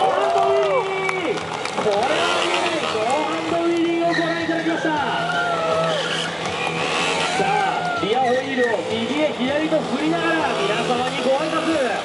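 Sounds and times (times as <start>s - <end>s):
motorcycle engine revving: 1.7s - 12.0s.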